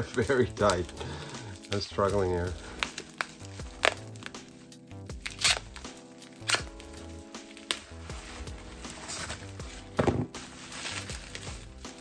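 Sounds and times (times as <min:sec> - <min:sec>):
bubble wrap crinkling: 0:00.0 - 0:12.0
music with bass line: 0:03.5 - 0:12.0.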